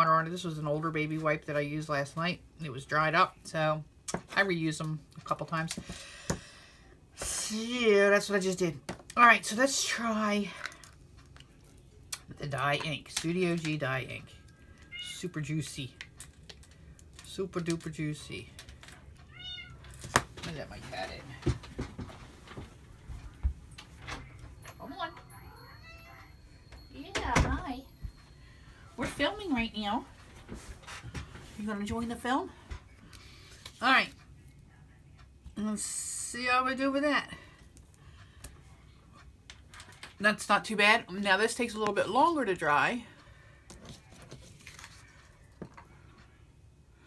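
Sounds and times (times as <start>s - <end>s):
cat meowing: 14.9s - 15.2s, 19.3s - 19.8s, 25.4s - 26.4s.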